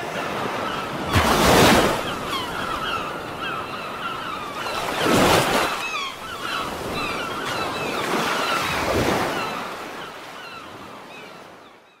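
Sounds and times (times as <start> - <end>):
seabirds calling: 0.0 - 12.0.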